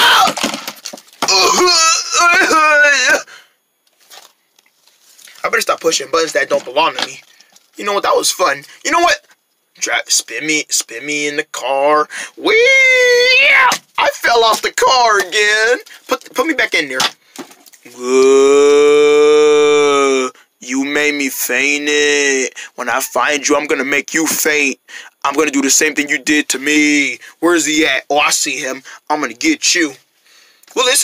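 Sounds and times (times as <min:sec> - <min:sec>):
person holding long loud note: 0:17.9 - 0:20.4
voice trailing off: 0:17.9 - 0:20.4.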